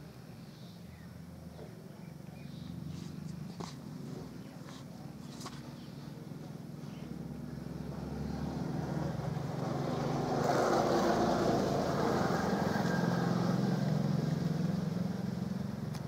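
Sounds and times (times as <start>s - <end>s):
vehicle engine passing by: 1.4s - 16.0s.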